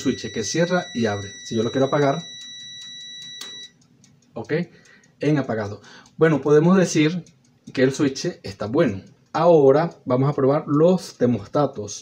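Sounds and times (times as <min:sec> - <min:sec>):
multimeter continuity beep: 0:00.0 - 0:03.8
timer switch click: 0:00.0 - 0:11.3.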